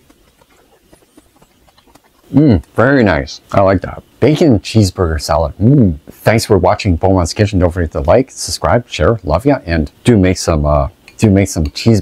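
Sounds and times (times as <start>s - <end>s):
soft chewing with small clicks: 0.0s - 2.8s.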